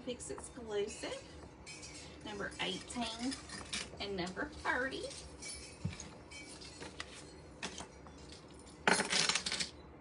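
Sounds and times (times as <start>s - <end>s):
metal jewelry jangling: 1.6s - 9.2s.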